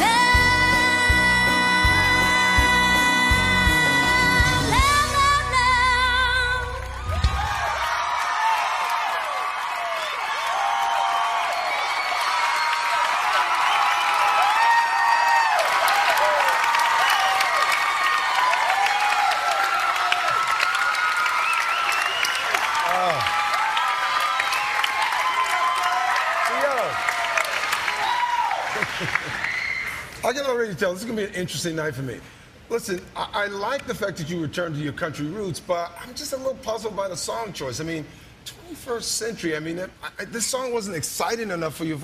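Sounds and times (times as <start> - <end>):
audience clapping: 6.7 - 30.2
audience shouting and whooping: 6.8 - 30.1.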